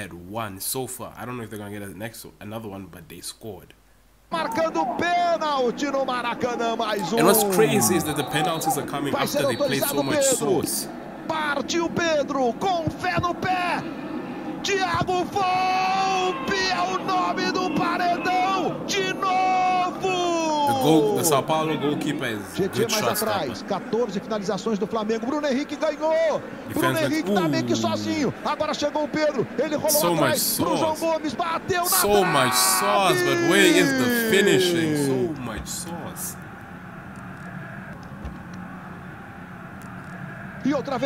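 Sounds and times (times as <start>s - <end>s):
commentator's long drawn-out shout: 7.0s - 10.6s, 26.7s - 28.3s, 29.8s - 31.1s, 31.7s - 36.0s.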